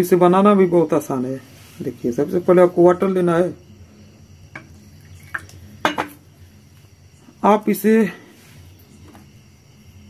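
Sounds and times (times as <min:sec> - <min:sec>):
water pouring into glass bowl: 0:04.6 - 0:06.0
light glass clinks: 0:05.8 - 0:06.2.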